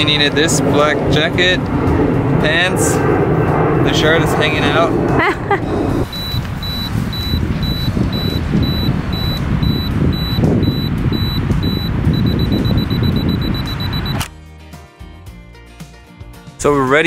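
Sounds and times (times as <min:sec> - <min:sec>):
low outdoor rumble: 0:00.0 - 0:14.2
camera self-timer beeping: 0:06.1 - 0:14.2.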